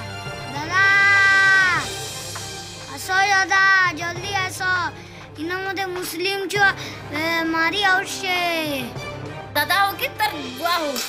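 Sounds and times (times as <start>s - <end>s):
child wailing cry: 0.5s - 1.9s.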